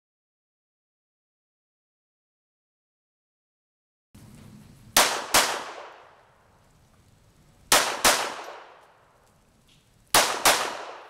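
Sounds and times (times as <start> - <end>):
pistol shots with echo: 5.0 - 6.2, 7.7 - 9.0, 10.1 - 11.0.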